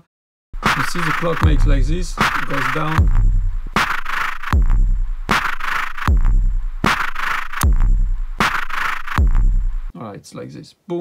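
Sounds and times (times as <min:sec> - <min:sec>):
noisy drum machine hiss: 0:00.6 - 0:09.9.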